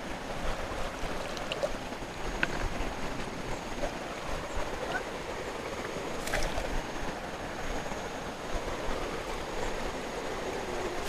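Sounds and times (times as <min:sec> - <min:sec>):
stream running over stones: 0:00.0 - 0:11.0.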